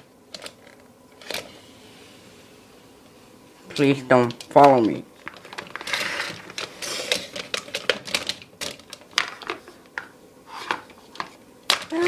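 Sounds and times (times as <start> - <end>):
plastic toys clicking and knocking: 4.2 - 10.1, 10.7 - 12.0
scraping rustles: 4.7 - 7.8.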